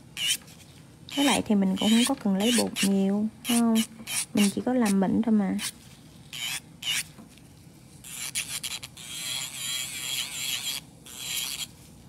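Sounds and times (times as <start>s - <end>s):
electric nail drill whining: 6.3s - 7.1s, 8.1s - 11.7s.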